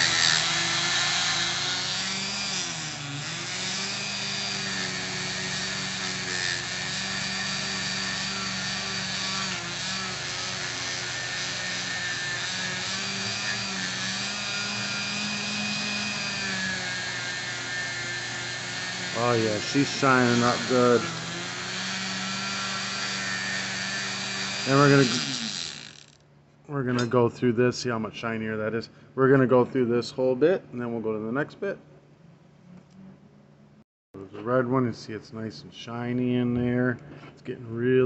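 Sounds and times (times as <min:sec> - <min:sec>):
rotary tool motor whine: 0:00.0 - 0:26.2.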